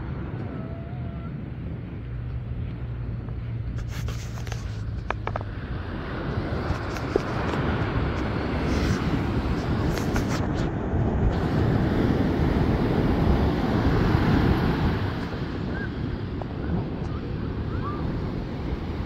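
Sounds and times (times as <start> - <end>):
wind buffeting microphone: 0.0 - 19.0
ocean surf breaking: 5.2 - 19.0.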